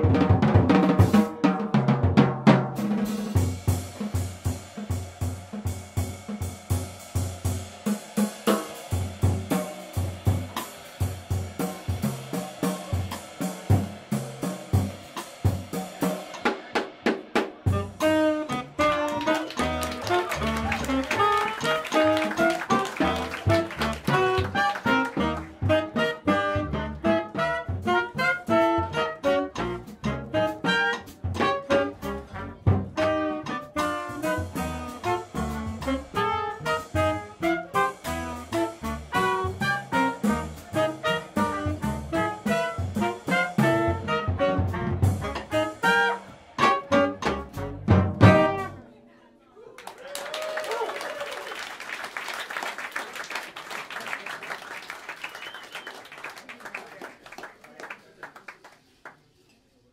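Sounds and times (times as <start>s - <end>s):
drum kit playing: 0.0s - 48.8s
trumpet: 17.6s - 49.0s
upright bass: 17.7s - 48.8s
tenor saxophone: 17.7s - 48.9s.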